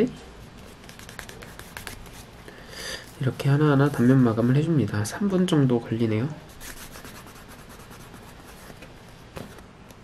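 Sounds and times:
cloth rubbing on leather: 0:00.7 - 0:02.3, 0:06.5 - 0:08.8.

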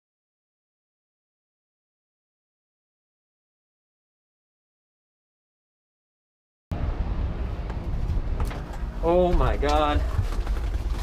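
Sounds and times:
low outdoor rumble: 0:06.7 - 0:11.0.

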